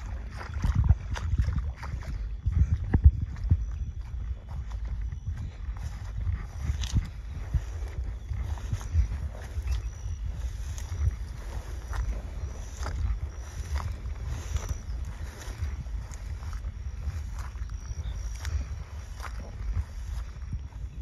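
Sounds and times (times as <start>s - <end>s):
footsteps swishing through grass: 0.0s - 21.0s
wind rumble on microphone: 0.0s - 21.0s.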